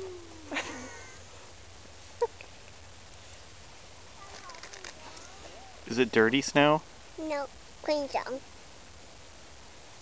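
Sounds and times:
child's high vocal sound: 0:00.0 - 0:00.6
child humming: 0:00.0 - 0:01.2.

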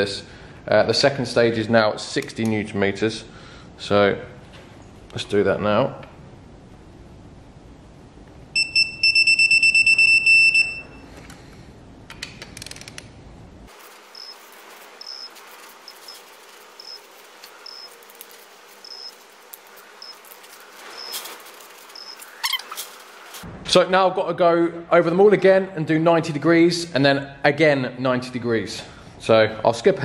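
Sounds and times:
rapidly pulsing high beep: 0:22.0 - 0:22.2.

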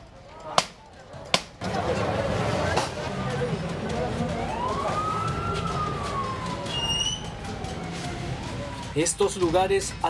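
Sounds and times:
siren wailing: 0:04.0 - 0:09.4.

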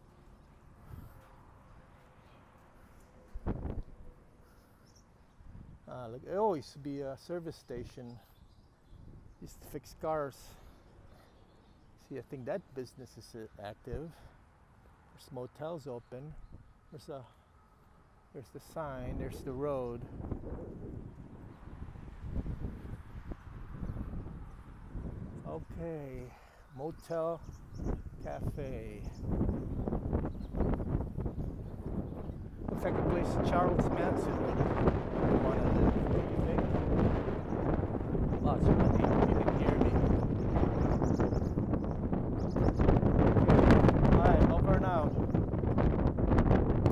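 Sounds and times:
wind buffeting microphone: 0:00.0 - 0:01.3, 0:03.3 - 0:04.1, 0:05.3 - 0:06.5, 0:07.7 - 0:09.5, 0:18.8 - 0:46.9.

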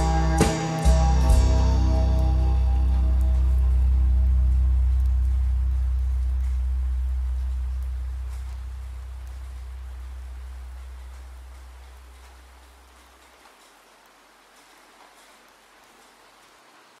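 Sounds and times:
low bass note: 0:00.0 - 0:12.8
rain falling: 0:00.0 - 0:17.0.

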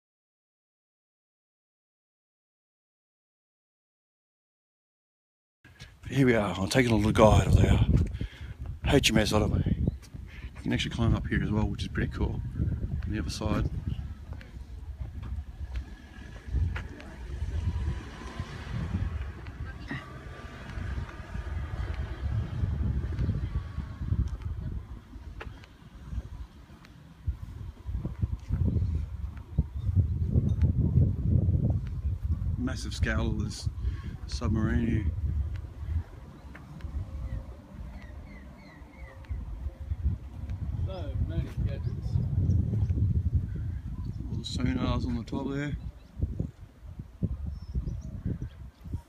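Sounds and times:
wind buffeting microphone: 0:05.7 - 0:49.0
faint distant voices: 0:10.6 - 0:29.6
bird chirping: 0:36.2 - 0:39.9.

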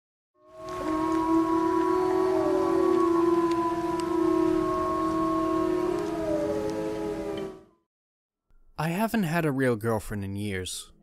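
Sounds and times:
dark atmospheric music: 0:00.4 - 0:07.8.

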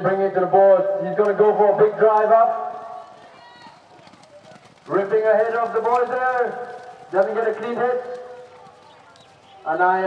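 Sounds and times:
hoofbeats galloping on grass: 0:01.2 - 0:10.0.

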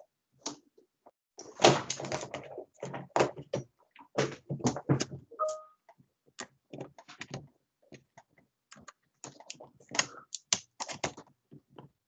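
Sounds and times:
keyboard and mouse clicks: 0:05.0 - 0:05.7, 0:06.4 - 0:11.9
brief steady tone: 0:05.4 - 0:05.8.

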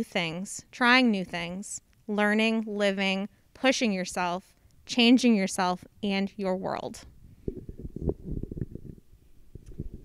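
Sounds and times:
microphone handling thuds and rubbing: 0:07.1 - 0:10.0.

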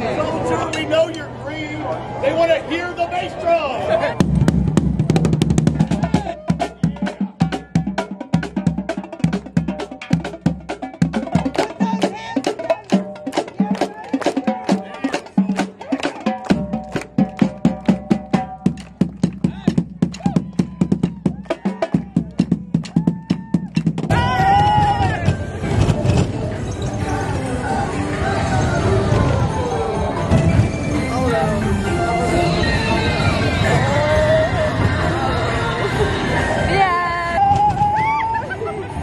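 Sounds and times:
marching snare and bass drums: 0:04.1 - 0:26.2
music: 0:04.2 - 0:39.0.

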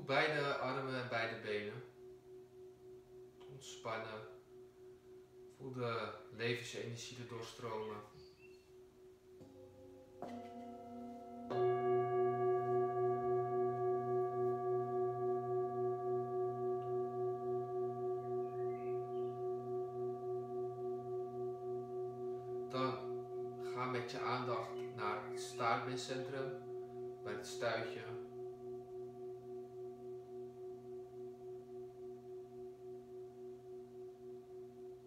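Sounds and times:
singing bowls ringing: 0:07.7 - 0:35.0
singing bowls struck: 0:09.4 - 0:35.0.

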